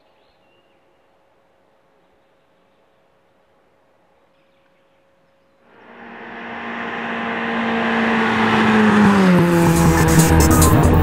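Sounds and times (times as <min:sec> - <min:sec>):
car engine passing by: 0:05.7 - 0:11.0.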